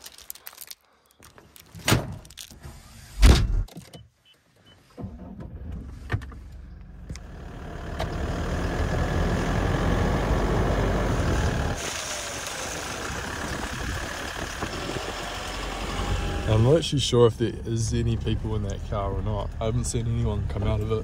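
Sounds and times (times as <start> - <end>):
tyres on gravel: 0.0 - 2.9
truck engine starting: 4.9 - 21.0
truck engine rumble: 5.2 - 21.0.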